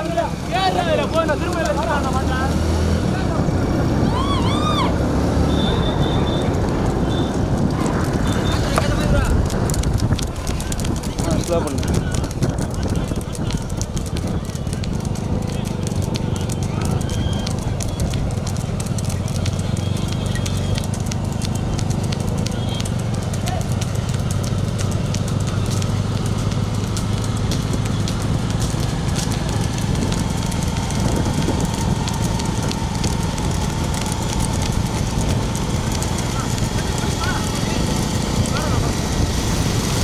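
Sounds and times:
hooves clattering on road: 0.0 - 40.0
motorcycle engines running: 0.0 - 40.0
people's voices: 0.0 - 40.0
wind noise: 2.5 - 40.0.

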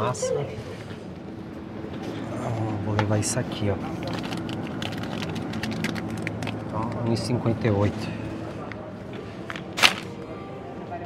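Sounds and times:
supermarket background: 0.0 - 11.0
plastic bag crackle: 3.9 - 6.7, 9.8 - 10.2.

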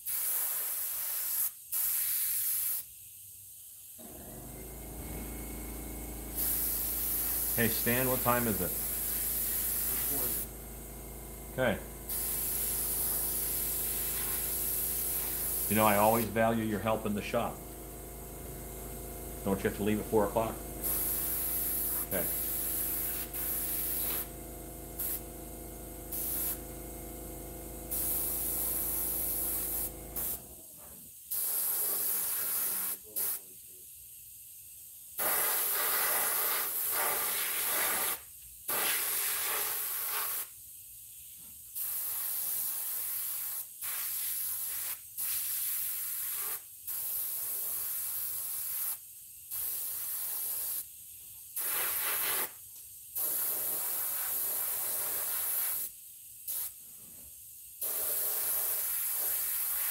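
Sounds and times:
airbrush hissing in bursts: 0.0 - 3.0, 6.2 - 10.9, 11.6 - 17.8, 20.8 - 24.3, 25.0 - 25.2, 26.1 - 26.7, 27.9 - 30.4, 31.3 - 33.6, 35.2 - 40.6, 41.8 - 50.9, 51.6 - 52.6, 53.2 - 56.8, 57.8 - 59.9
steady low hum: 4.2 - 30.2.

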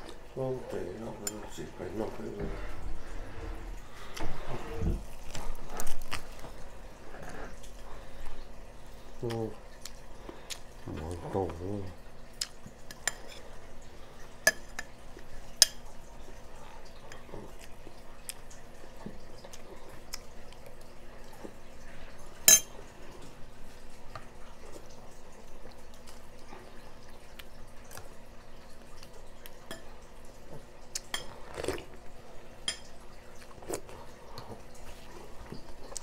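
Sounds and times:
spoons clinking against bowls: 22.4 - 22.7.

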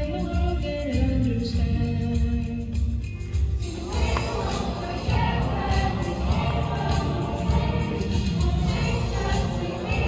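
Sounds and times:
bass-heavy musical accompaniment: 0.0 - 10.0
choir singing: 3.6 - 10.0.

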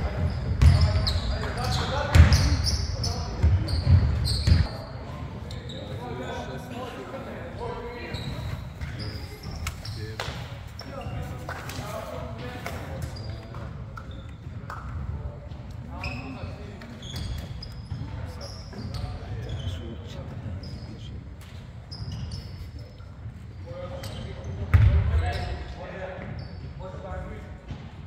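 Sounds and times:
voices echoing in a hall: 0.0 - 28.0
basketballs bouncing on hardwood: 0.1 - 1.1, 2.1 - 2.5.

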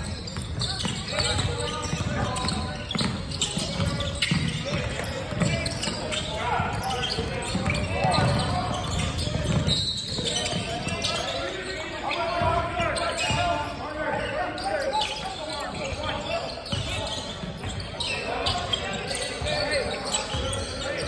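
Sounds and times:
voices echoing in gymnasium: 0.0 - 21.0
basketball bouncing on wooden floor: 6.8 - 10.7.

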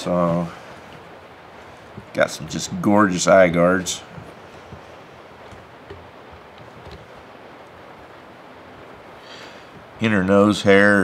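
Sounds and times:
background hiss: 0.0 - 11.0
hands rustling animal hide: 0.6 - 7.8.

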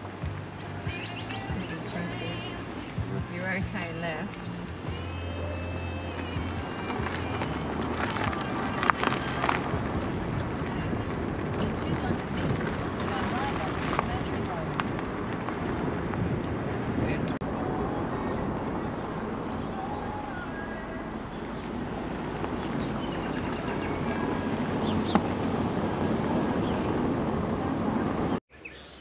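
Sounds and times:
car road noise: 0.0 - 29.0
wind rush: 6.6 - 28.4.

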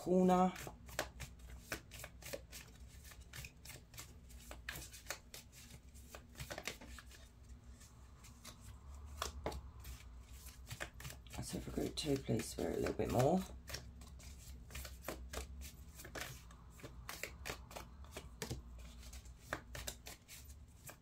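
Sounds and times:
cards being shuffled: 0.4 - 21.0.

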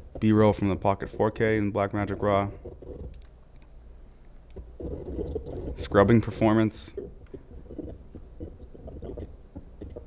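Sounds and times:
low steady hum: 0.0 - 10.0
choppy scrubbed audio snippets: 4.8 - 10.0.

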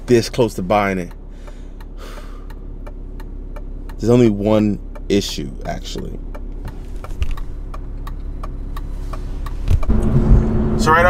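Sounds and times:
car cabin engine and road hum: 0.0 - 11.0
driver breathing softly: 1.2 - 2.7
faint ticks: 4.9 - 9.9.

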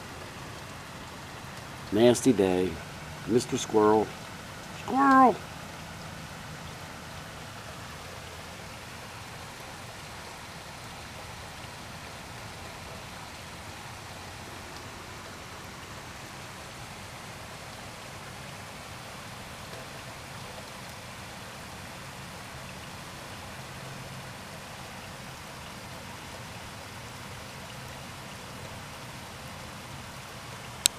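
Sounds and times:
steady rain falling: 0.0 - 30.9.

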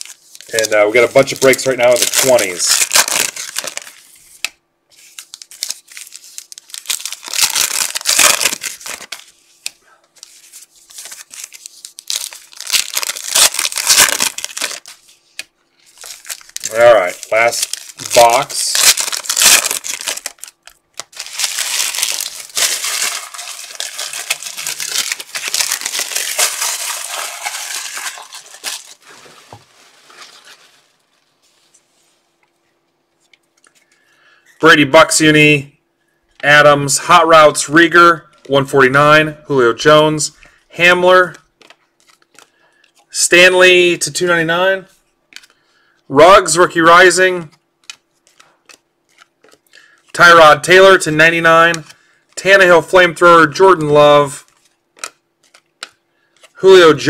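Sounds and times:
foil wrappers tearing and crinkling: 0.0 - 4.1, 5.0 - 9.3, 10.2 - 15.1, 15.9 - 31.0.

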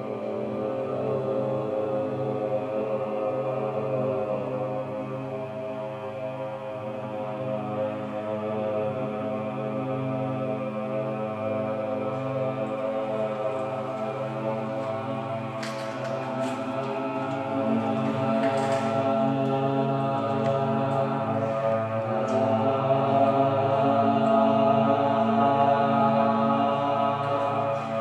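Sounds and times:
men chanting in a drone: 0.0 - 28.0.

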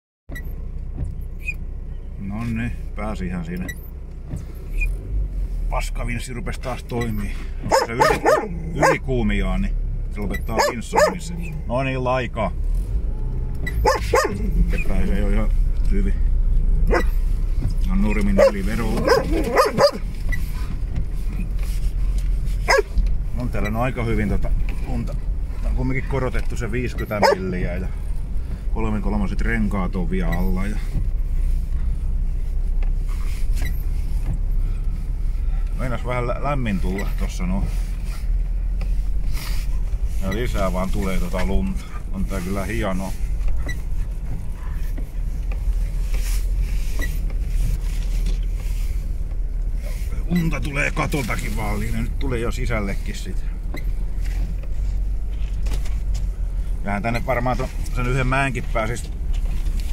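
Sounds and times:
vehicle engine low rumble: 0.3 - 59.9.

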